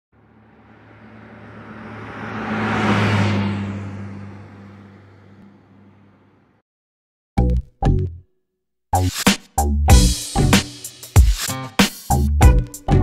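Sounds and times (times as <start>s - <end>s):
car pass-by whoosh: 0.2s - 6.4s.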